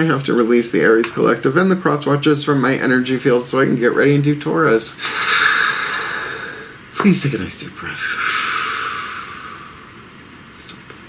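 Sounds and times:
person breathing in: 5.0 - 6.8, 8.0 - 9.9.

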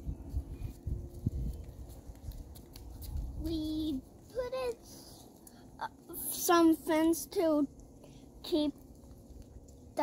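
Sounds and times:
footsteps in a yard: 0.0 - 10.0.

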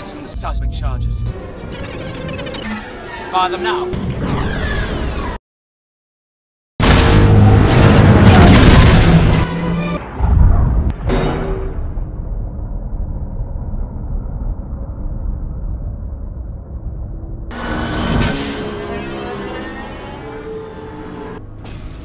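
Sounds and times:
long low rumble: 11.7 - 17.6.

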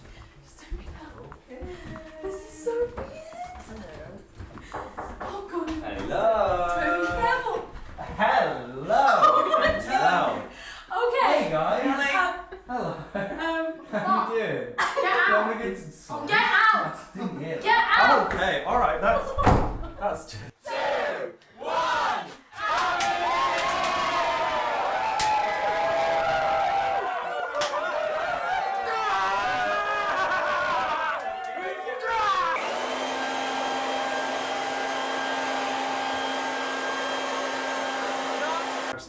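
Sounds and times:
people shouting: 20.6 - 32.6
crowd cheering: 20.7 - 39.0.

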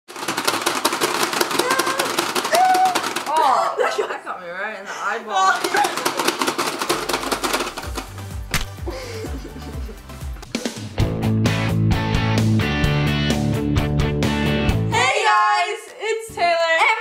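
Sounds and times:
ratcheting clicks of cranked handle: 0.1 - 3.5, 5.6 - 8.4
girls squealing: 1.6 - 3.8
girls' voices: 1.6 - 6.2, 14.9 - 17.0
laughter: 3.5 - 4.3, 8.9 - 10.1
music: 6.2 - 17.0.

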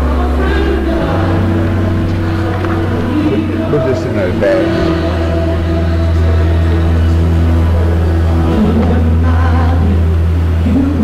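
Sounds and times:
organ playing chord: 0.0 - 11.0.

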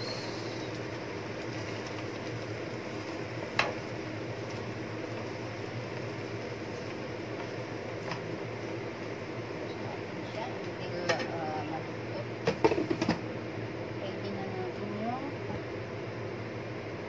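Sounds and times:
lettuce sizzling in frying pan: 0.0 - 11.8.

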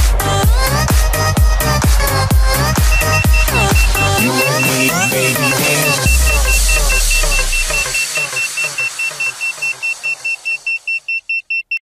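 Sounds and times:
music: 0.0 - 11.2
drone buzzer beeping: 2.6 - 11.4.

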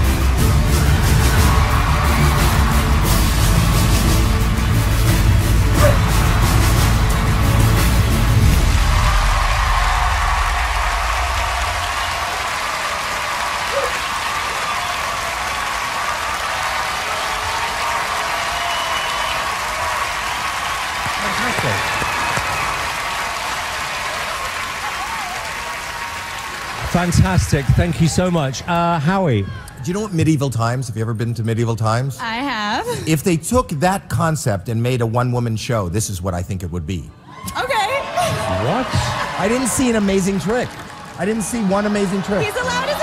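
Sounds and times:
music with strong bass: 0.0 - 9.4
audience cheering and applauding: 0.0 - 30.2, 37.2 - 43.0.

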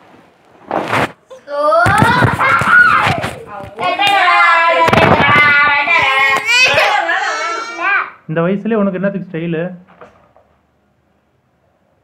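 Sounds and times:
phone rubbing against clothing: 0.6 - 1.2
young child vocalising: 1.3 - 3.3.

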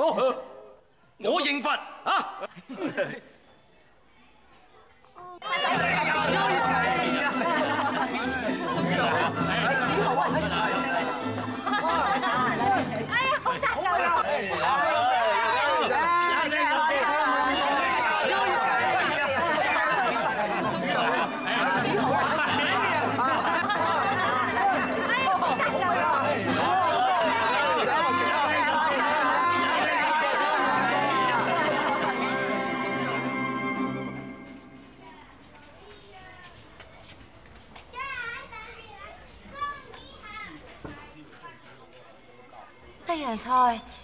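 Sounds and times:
group chattering: 0.0 - 44.0.

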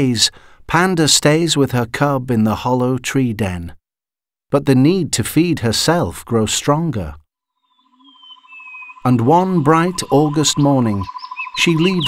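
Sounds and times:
bird descending whistle: 7.7 - 12.0.

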